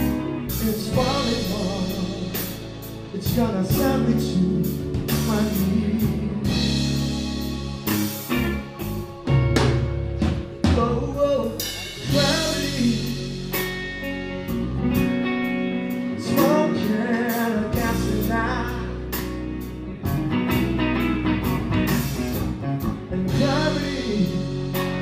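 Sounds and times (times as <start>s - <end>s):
person singing: 0.0s - 8.1s, 10.6s - 13.8s, 16.1s - 19.4s, 22.8s - 25.0s
live blues-rock band: 0.0s - 25.0s.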